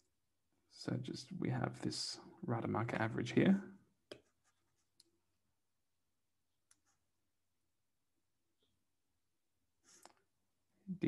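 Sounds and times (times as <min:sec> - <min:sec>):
stylus clicking on tablet screen: 0:06.5 - 0:07.0.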